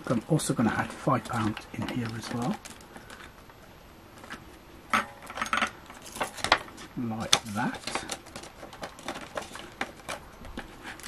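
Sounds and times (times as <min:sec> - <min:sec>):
plastic crinkling and clicking: 0:00.0 - 0:03.6, 0:04.2 - 0:11.0.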